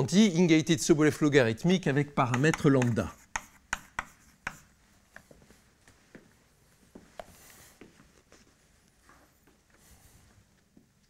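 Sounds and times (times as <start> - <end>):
chalk clicking on blackboard: 2.2 - 4.7.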